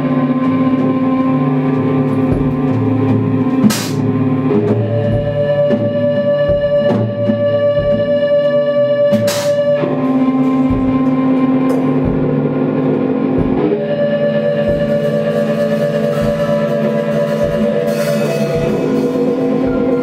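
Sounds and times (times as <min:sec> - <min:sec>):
layered droning electronic tones: 0:00.0 - 0:20.0
low irregular thumps: 0:00.0 - 0:20.0.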